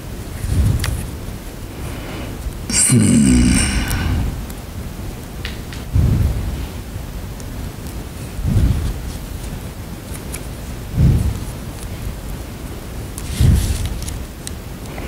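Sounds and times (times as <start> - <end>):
steady hiss: 0.0 - 15.0
heavy breathing: 1.7 - 4.5.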